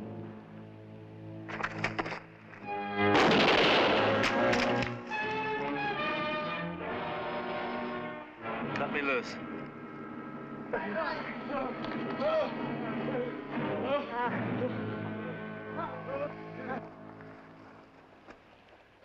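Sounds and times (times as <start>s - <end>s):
dramatic orchestral music with brass: 2.6s - 9.5s
rifle volley blast and cracks: 3.0s - 5.3s.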